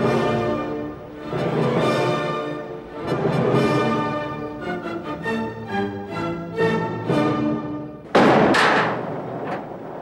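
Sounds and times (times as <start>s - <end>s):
loud crash: 8.1s - 10.0s.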